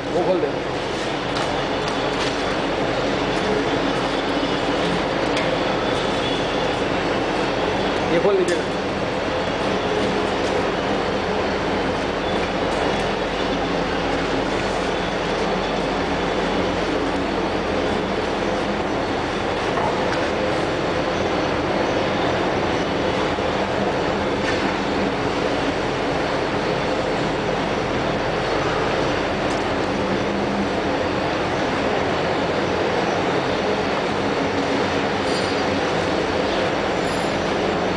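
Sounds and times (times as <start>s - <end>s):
gear shaper machine running: 0.0s - 37.9s.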